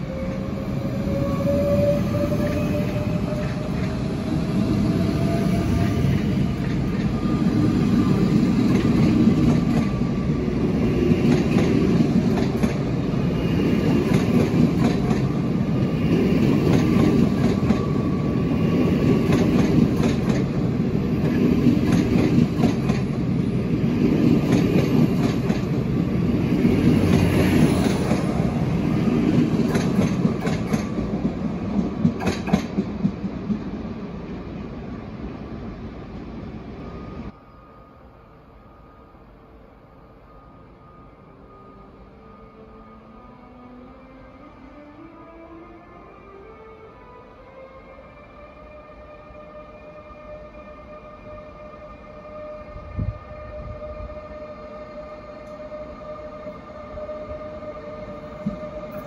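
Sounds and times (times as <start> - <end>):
electric train drive whine: 0.0 - 31.8
train wheels clacking over rail joints: 29.4 - 33.2.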